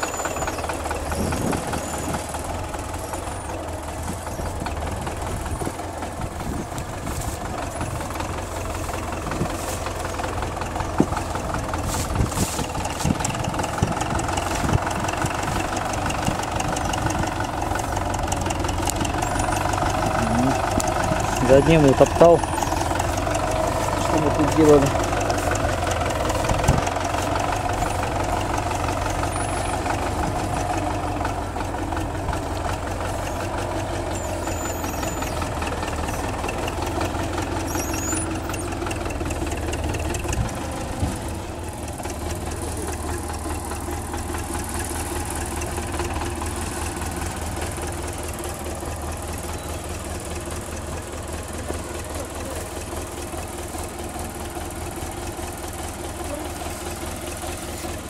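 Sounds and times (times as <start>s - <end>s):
diesel tractor engine idling: 0.0s - 58.0s.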